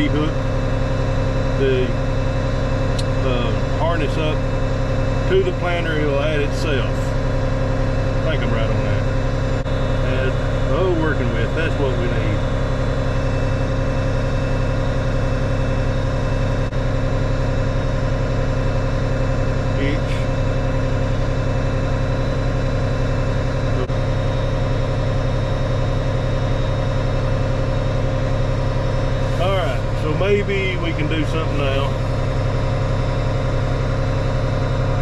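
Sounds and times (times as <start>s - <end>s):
tractor engine idling: 0.0s - 35.0s.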